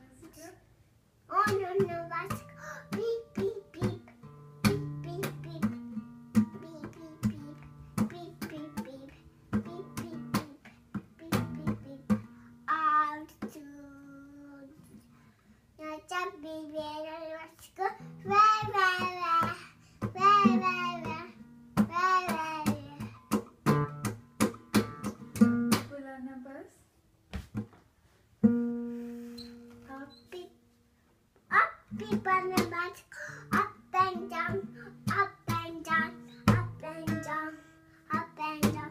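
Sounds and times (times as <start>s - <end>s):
child singing wavering notes: 1.3s - 5.8s
child plucking guitar strings: 1.3s - 12.4s, 31.9s - 38.9s.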